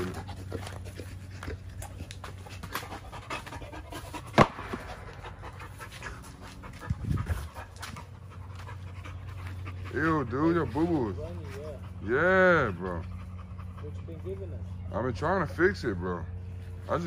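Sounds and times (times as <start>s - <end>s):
dog panting: 0.0s - 17.0s.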